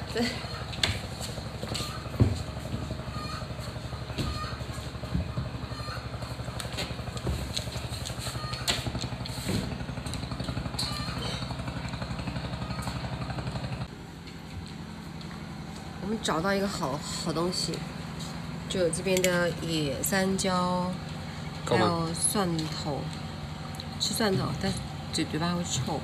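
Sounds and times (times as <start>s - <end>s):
small engine running: 0.0s - 26.0s.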